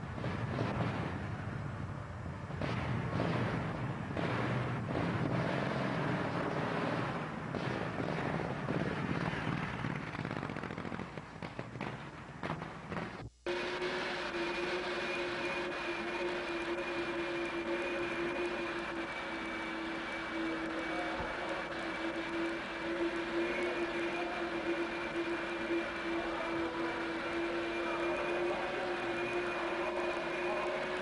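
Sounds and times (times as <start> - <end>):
motor hum: 12.9 - 31.0
rushing noise: 13.2 - 31.0.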